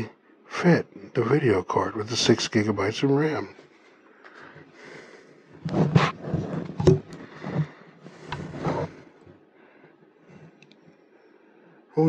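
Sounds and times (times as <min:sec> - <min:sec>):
metal scraping: 0:05.6 - 0:09.0.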